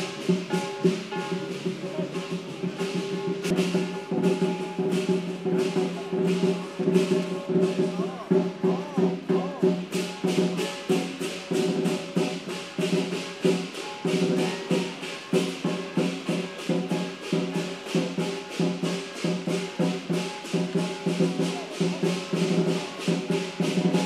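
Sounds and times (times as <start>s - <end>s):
cymbals crashing: 0.0s - 24.0s
drum beating: 0.0s - 24.0s.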